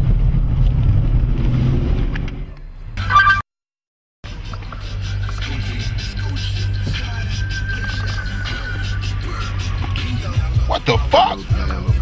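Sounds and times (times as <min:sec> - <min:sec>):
car engine and road noise: 0:00.0 - 0:03.5, 0:04.3 - 0:12.0.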